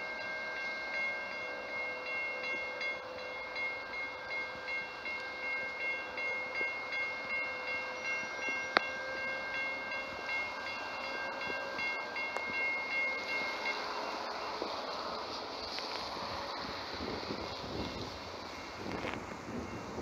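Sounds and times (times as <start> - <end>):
railroad crossing bell ringing: 0.0 - 20.0.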